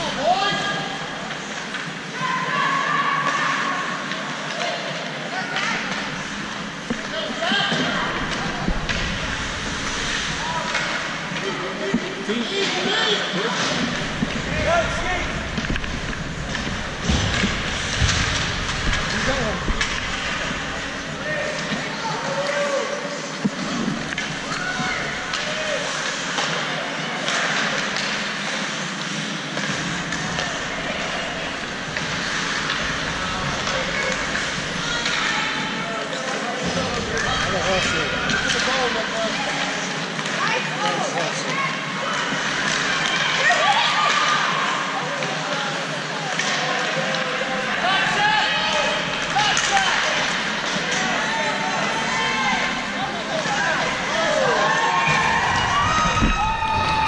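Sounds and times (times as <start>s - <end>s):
spectators talking and calling out: 0.0s - 57.0s
hockey sticks and puck clacking: 1.2s - 2.1s, 3.2s - 41.6s, 42.3s - 45.7s, 46.3s - 47.7s, 48.6s - 56.4s.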